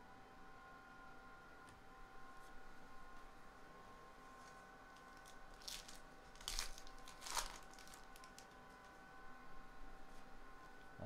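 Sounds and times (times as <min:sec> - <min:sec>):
wrapper tearing and crinkling: 0:05.0 - 0:09.0.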